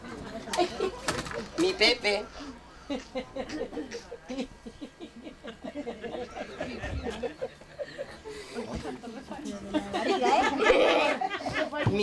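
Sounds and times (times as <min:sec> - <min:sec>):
several voices talking: 0:00.0 - 0:12.0.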